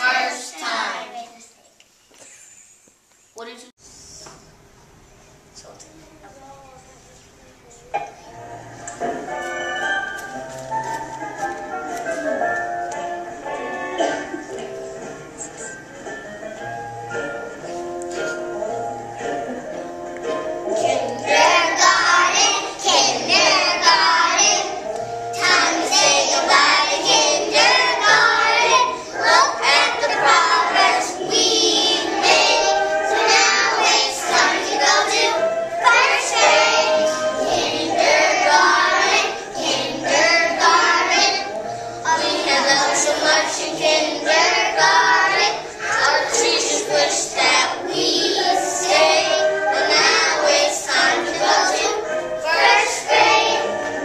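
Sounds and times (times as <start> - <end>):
children singing in unison: 0.0 - 1.1, 20.7 - 54.0.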